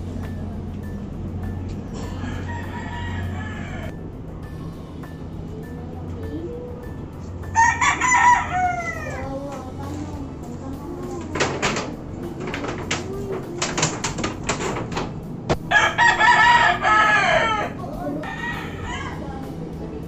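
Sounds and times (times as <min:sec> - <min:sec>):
steady low hum: 0:00.0 - 0:20.0
rooster crowing: 0:02.0 - 0:04.0, 0:07.5 - 0:09.3, 0:15.6 - 0:19.4.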